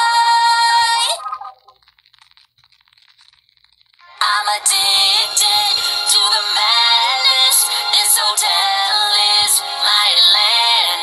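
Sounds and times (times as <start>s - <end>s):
faint rapid crackling clicks: 0.4s - 4.6s.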